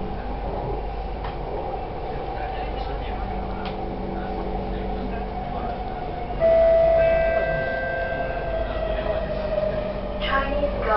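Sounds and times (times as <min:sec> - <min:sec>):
train rumble: 0:00.0 - 0:10.9
train braking whine: 0:06.3 - 0:10.9.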